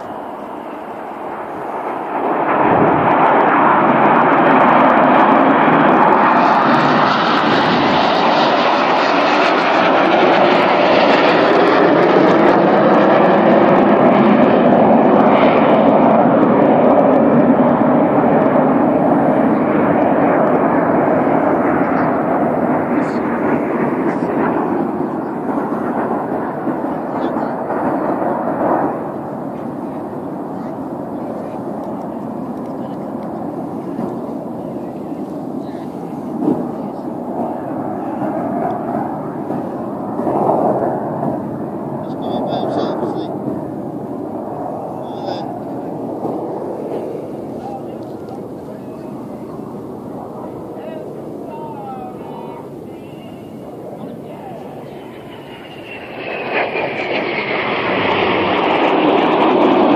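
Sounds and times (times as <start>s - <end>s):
jets flying past: 0.0s - 59.9s.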